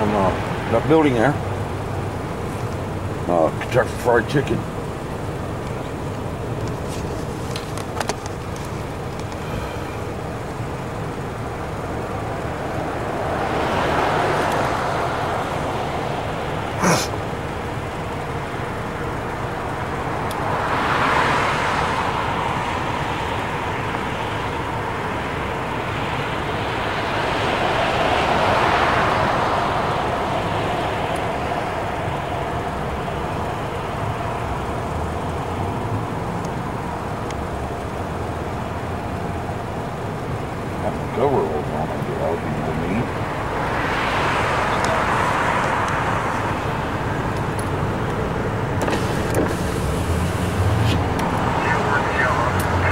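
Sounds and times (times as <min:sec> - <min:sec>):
traffic rumble: 0:00.0 - 0:52.9
vehicles passing: 0:00.0 - 0:52.9.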